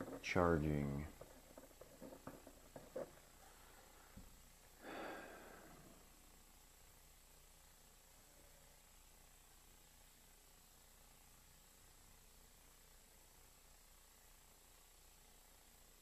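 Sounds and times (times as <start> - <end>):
person sighing: 4.8 - 5.8.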